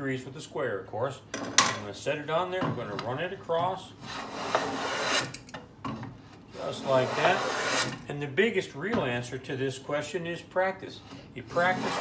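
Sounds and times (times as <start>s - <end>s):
hand plane cutting wood: 4.0s - 5.4s, 6.6s - 8.0s, 11.5s - 12.0s.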